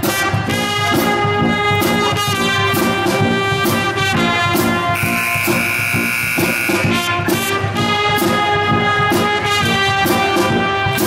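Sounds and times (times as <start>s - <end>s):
brass band playing: 0.0s - 11.0s
loud high held tone: 5.0s - 7.0s.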